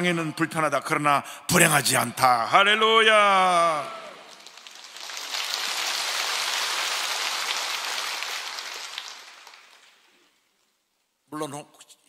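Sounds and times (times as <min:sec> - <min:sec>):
congregation applauding: 0:03.5 - 0:10.4.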